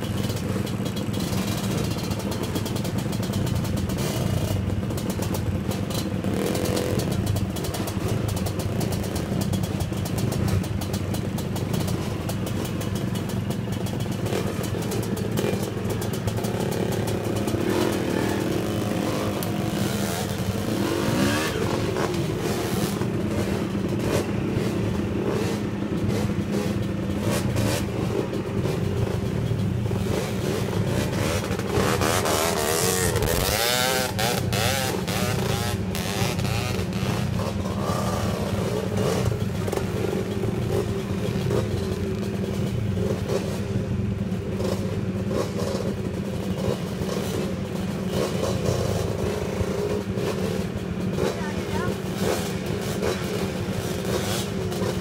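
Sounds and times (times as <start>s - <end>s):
dirt bike engines revving: 0.0s - 55.0s.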